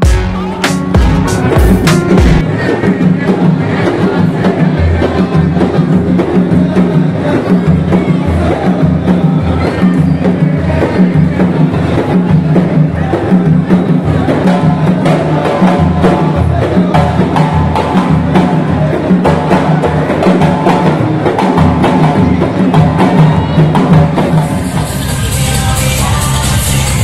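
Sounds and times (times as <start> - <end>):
frame drums beaten: 0.0 - 27.0.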